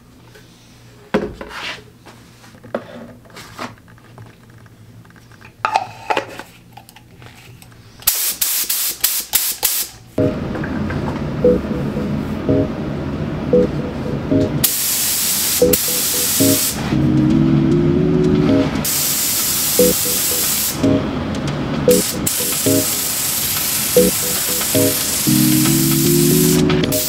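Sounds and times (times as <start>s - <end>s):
spray gun hissing: 14.6s - 16.7s, 18.9s - 20.8s, 22.0s - 25.6s.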